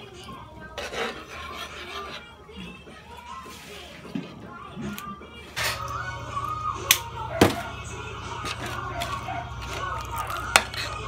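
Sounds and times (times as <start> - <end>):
ladle scraping a pot: 0.7 - 2.4, 8.4 - 11.0.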